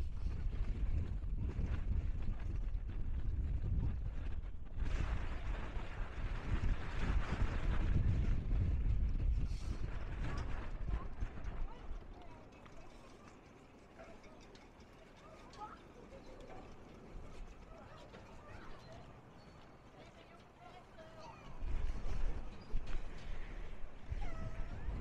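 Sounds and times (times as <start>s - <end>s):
wind buffeting microphone: 0.0s - 25.0s
faint voices of people: 9.6s - 25.0s.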